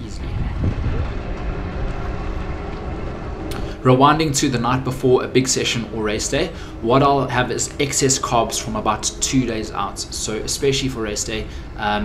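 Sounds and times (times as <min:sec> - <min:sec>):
wind on microphone: 0:00.0 - 0:03.9
low outdoor rumble: 0:00.0 - 0:12.0
man talking: 0:03.5 - 0:12.0.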